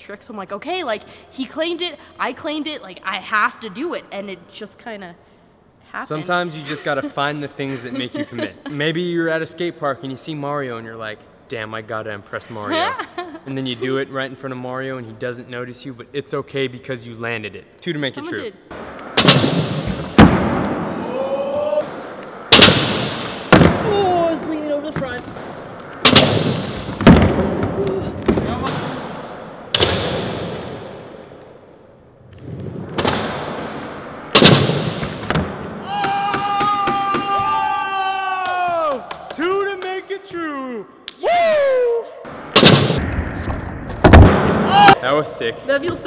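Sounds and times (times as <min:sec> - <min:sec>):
people yelling: 0:21.0 - 0:21.9, 0:35.8 - 0:39.1
skateboard wheels rolling on concrete: 0:23.1 - 0:29.8.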